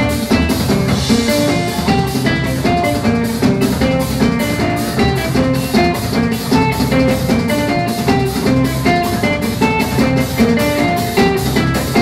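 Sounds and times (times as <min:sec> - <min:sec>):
drums with steady beat: 0:00.0 - 0:12.0
guitars: 0:00.0 - 0:12.0.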